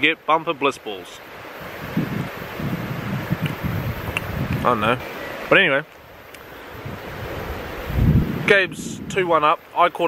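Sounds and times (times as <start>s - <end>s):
wind buffeting microphone: 1.4s - 5.1s, 6.1s - 9.5s.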